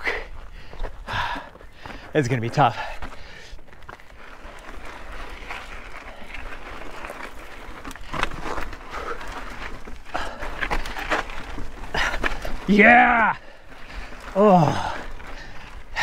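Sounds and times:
tyres grinding on rock: 0:03.6 - 0:16.0.

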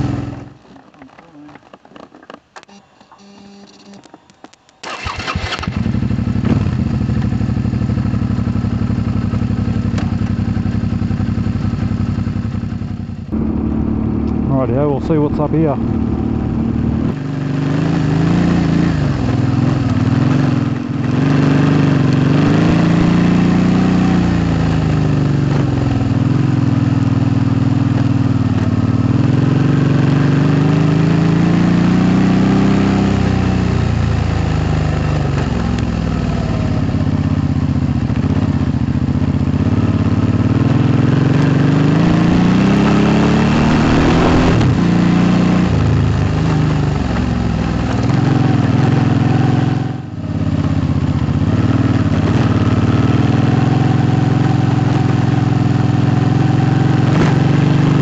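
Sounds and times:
motorcycle engine revving: 0:00.0 - 0:00.6, 0:04.8 - 0:58.0.

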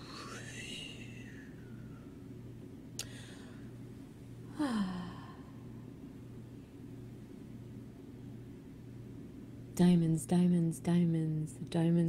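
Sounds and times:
woman sighing: 0:04.5 - 0:05.6.

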